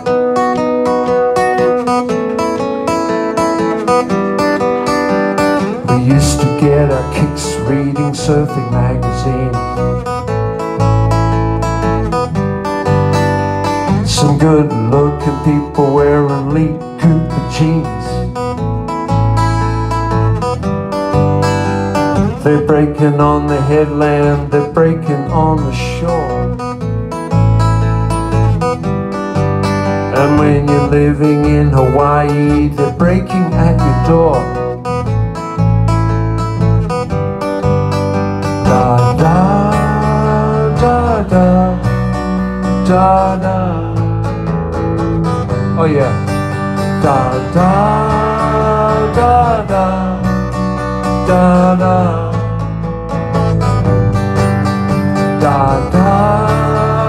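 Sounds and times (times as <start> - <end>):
acoustic guitar strumming: 0.0 - 57.0
sliding guitar melody: 0.0 - 57.0.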